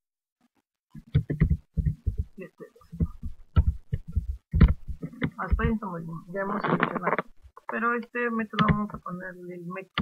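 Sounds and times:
computer keyboard typing: 0:01.0 - 0:02.4.

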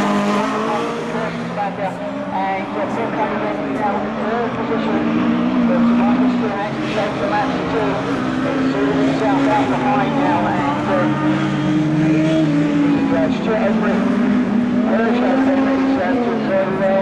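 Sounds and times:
racing car engines revving: 0:00.0 - 0:17.0.

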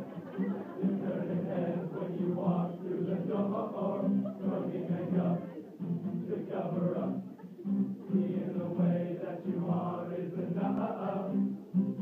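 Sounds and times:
group of men singing a cappella: 0:00.8 - 0:05.5, 0:06.1 - 0:07.2, 0:08.1 - 0:11.6.

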